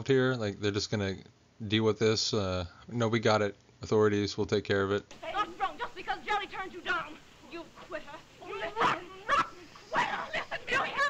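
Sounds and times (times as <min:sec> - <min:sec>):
film dialogue: 0:05.1 - 0:11.0
sharp vocal outbursts: 0:05.1 - 0:11.0.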